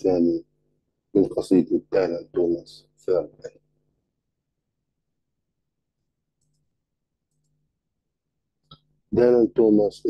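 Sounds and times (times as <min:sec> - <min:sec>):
faint mouse clicks: 0:06.4 - 0:07.6, 0:08.6 - 0:08.9.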